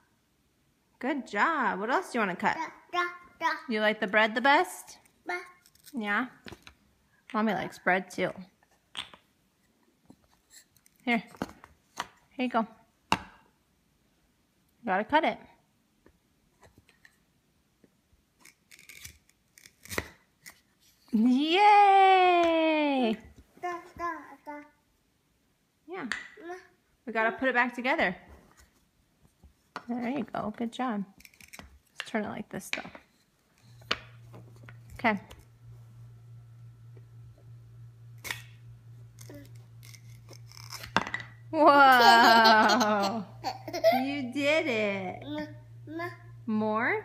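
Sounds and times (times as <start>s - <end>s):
steady low hum: 32.4s - 47.0s
wooden toy knife scraping: 39.2s - 41.0s.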